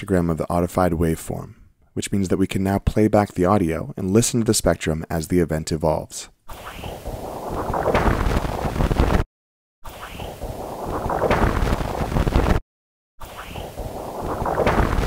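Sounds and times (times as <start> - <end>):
percussive thud: 7.9 - 8.4, 11.2 - 12.6, 14.5 - 15.0
noisy rushing sound: 13.2 - 15.0.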